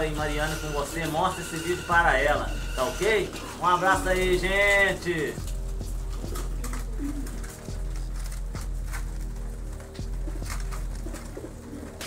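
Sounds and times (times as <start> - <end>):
pigeons cooing: 4.2 - 12.0.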